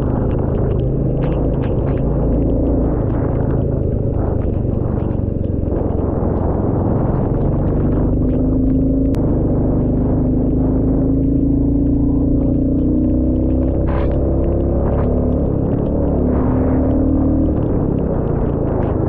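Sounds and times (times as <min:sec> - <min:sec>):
motorcycle engine droning: 0:00.0 - 0:19.0.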